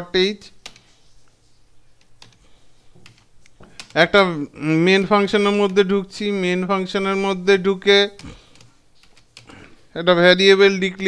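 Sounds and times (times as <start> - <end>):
computer keyboard keystrokes: 0.6 - 1.0, 2.0 - 2.4, 3.0 - 4.0, 8.2 - 9.6.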